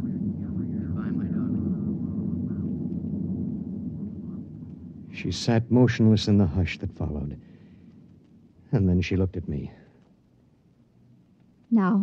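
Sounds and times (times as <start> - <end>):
low rumbling spaceship drone: 0.0 - 8.2.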